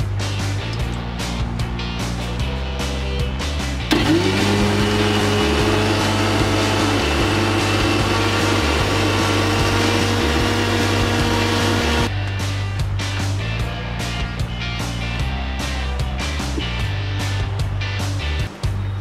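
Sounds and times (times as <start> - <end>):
background music: 0.0 - 19.0
mixer grinder motor whining: 3.9 - 12.1.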